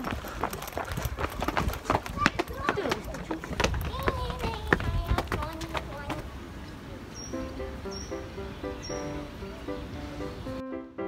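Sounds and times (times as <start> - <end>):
footsteps on garden path: 0.0 - 7.3.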